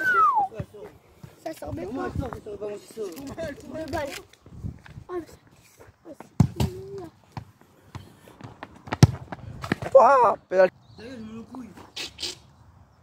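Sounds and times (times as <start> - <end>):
voices talking and calling out: 0.0 - 8.3, 9.8 - 12.6
football being kicked: 6.4 - 9.9.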